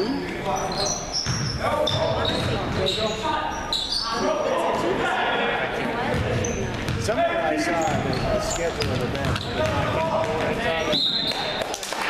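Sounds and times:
sneaker squeak on hardwood floor: 0:00.6 - 0:04.2, 0:06.1 - 0:07.0, 0:07.7 - 0:09.8.

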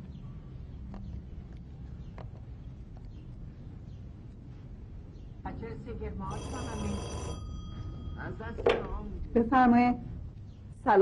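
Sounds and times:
voices: 0:05.4 - 0:10.1
telephone bell ringing: 0:06.3 - 0:08.5.

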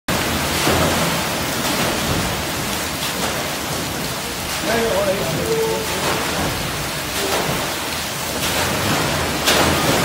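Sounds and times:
paddle wheel churning water: 0:00.1 - 0:10.0.

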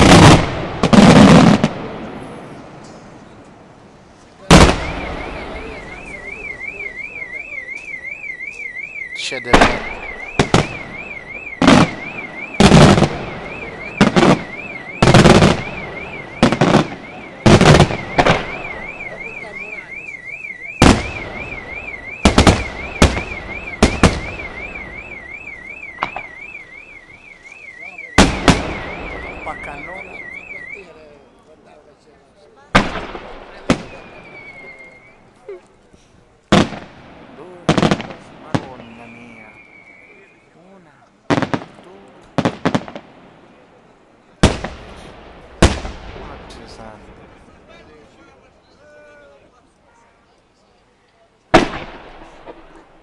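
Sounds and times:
firework crackling: 0:00.0 - 0:08.6, 0:09.2 - 0:32.0, 0:32.6 - 0:40.5, 0:41.2 - 0:48.8, 0:51.4 - 0:53.0
car alarm warbling: 0:04.5 - 0:31.1, 0:38.6 - 0:40.5.

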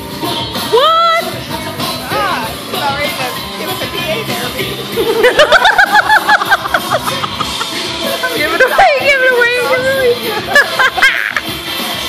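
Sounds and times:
background music: 0:00.0 - 0:12.0
high-pitched laughter: 0:04.9 - 0:07.8, 0:10.2 - 0:11.5.

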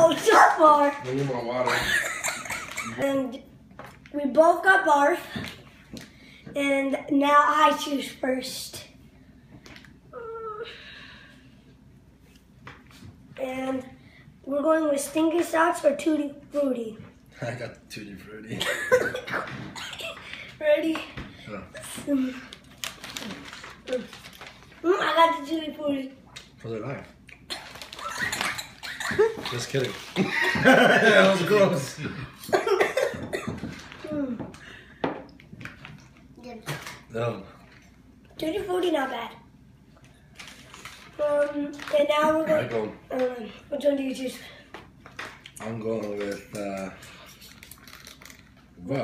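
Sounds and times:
person coughing: 0:18.6 - 0:20.1, 0:32.0 - 0:33.7.

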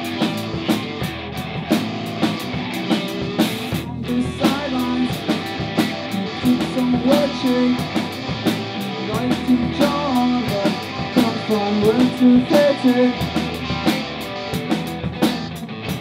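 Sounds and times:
drum kit beat: 0:00.0 - 0:16.0
electric bass: 0:00.0 - 0:16.0
electric guitars: 0:00.0 - 0:16.0.

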